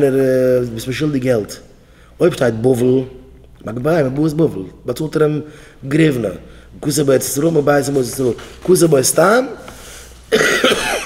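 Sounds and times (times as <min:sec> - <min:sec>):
man speaking: 0:00.0 - 0:09.8
man coughing: 0:10.3 - 0:11.0.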